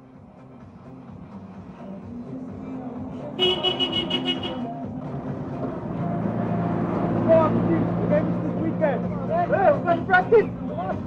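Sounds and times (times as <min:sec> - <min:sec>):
vehicle horn: 0:03.4 - 0:04.7.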